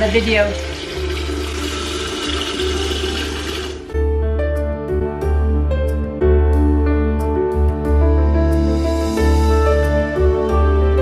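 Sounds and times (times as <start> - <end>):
tap water running into a kettle: 0.0 - 3.9
soft background music: 0.0 - 11.0.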